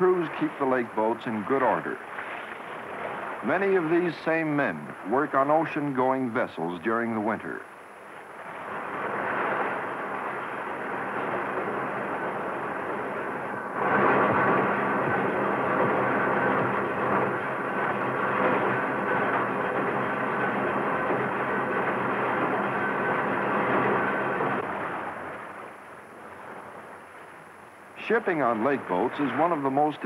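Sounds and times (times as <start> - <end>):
engine-room machinery running: 8.2 - 30.0.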